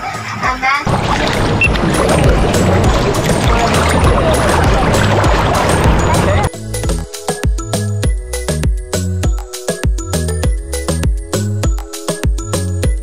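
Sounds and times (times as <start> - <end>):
background music: 0.0 - 13.0
sea water churning and splashing: 0.9 - 6.5.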